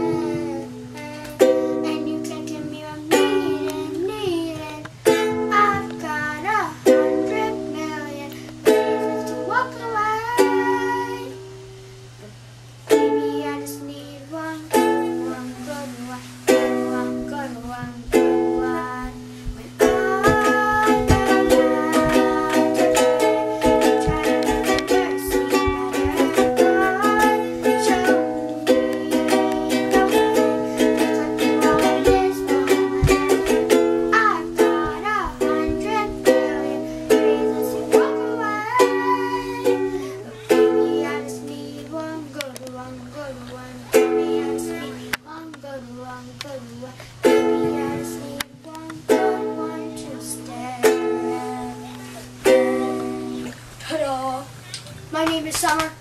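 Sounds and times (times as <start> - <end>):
ukulele strumming: 0.0 - 54.2.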